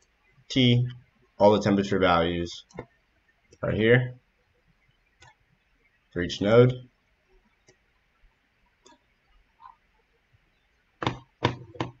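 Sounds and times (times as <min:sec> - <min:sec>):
sharp knocks with dull ring: 0:11.0 - 0:12.0.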